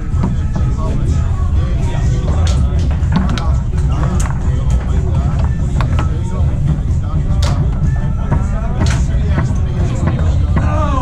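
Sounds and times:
background music: 0.0 - 11.0
voices in room: 0.0 - 11.0
foosball ball clacking: 2.2 - 10.7.

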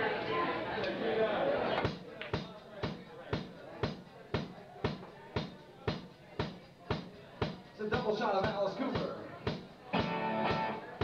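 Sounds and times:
audience chatter: 0.0 - 11.0
drum kit beat: 1.8 - 11.0
live rock band playing: 9.9 - 11.0.

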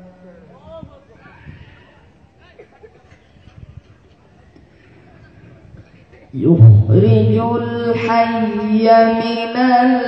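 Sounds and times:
man reciting melodically: 6.3 - 10.0.

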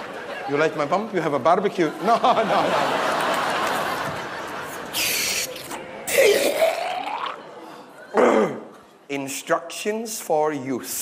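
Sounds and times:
gurgling throat noises: 4.9 - 7.5.

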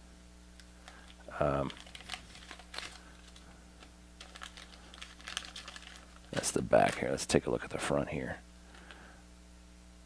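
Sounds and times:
steady low hum: 0.0 - 10.0
paper leaflet unfolding: 1.7 - 7.0.

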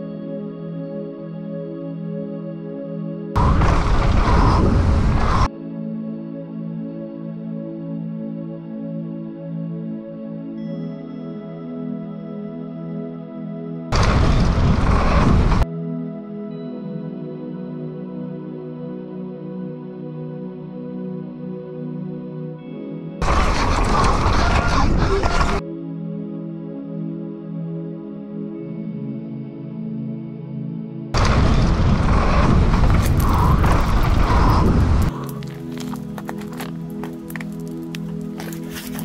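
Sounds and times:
deep rumble: 3.4 - 5.5, 13.9 - 15.6, 23.2 - 25.6, 31.2 - 39.0
rush of wind-like noise: 3.4 - 5.5, 31.2 - 36.0.

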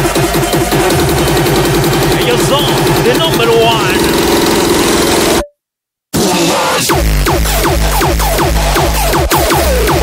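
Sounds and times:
electronic dance music: 0.0 - 5.5, 6.2 - 10.0.

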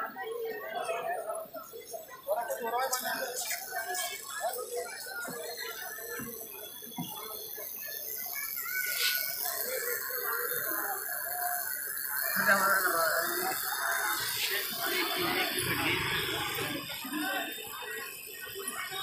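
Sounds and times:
indistinct background voices: 0.0 - 19.0.

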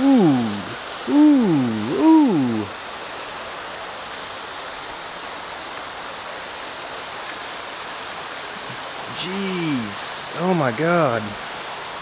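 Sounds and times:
flowing water rushing: 0.0 - 12.0.

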